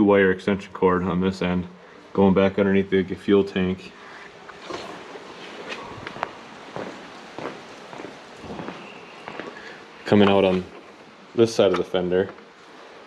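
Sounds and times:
footsteps: 4.5s - 12.8s.

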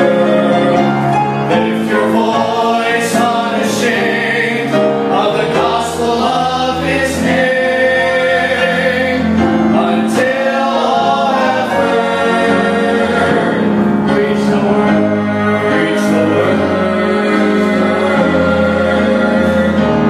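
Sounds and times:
boys singing gospel song: 0.0s - 20.0s.

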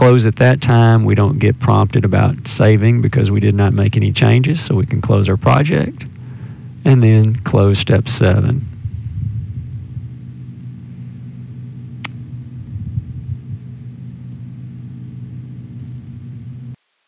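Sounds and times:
faint background hiss: 0.0s - 17.0s
low electrical hum: 0.0s - 17.0s
sharp click: 12.0s - 12.2s.

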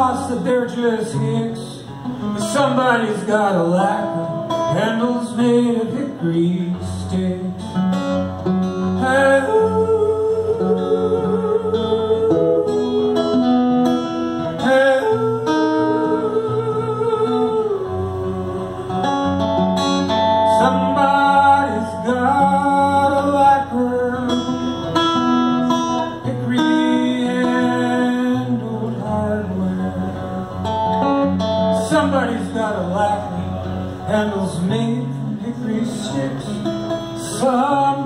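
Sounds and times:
acoustic guitar playing: 0.0s - 38.0s
wordless vocal melody: 0.0s - 38.0s.

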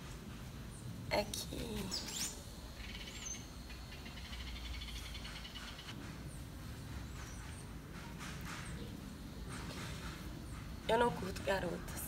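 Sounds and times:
small birds chirping: 0.6s - 12.0s
faint rapid bird trill: 1.8s - 10.7s.

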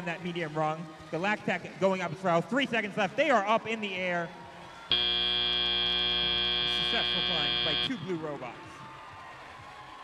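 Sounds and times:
loud electronic buzzer: 4.9s - 8.0s.

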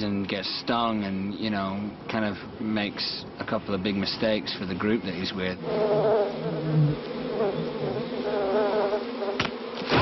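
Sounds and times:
bee swarm buzzing: 5.4s - 10.0s.

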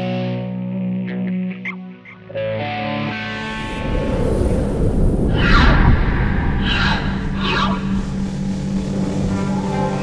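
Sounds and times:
low music drone: 2.2s - 10.0s
whoosh sound effect: 3.5s - 9.3s.

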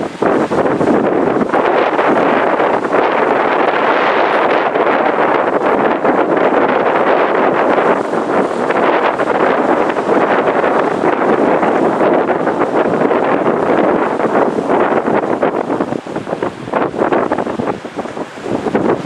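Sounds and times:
wind blowing across microphone: 0.0s - 19.0s.

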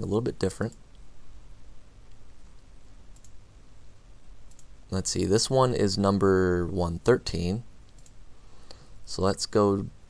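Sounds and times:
low steady room hum: 0.0s - 10.0s
computer mouse clicks: 3.1s - 3.4s, 4.4s - 4.7s, 7.9s - 8.2s.

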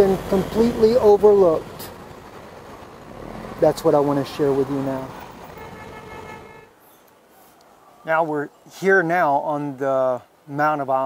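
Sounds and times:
distant traffic: 0.0s - 11.0s
faint horn-like tone: 5.5s - 6.8s.

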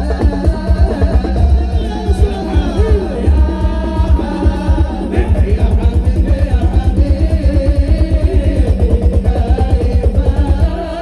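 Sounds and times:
instrumental melody: 0.0s - 5.9s
fast low drum beat: 0.0s - 11.0s.

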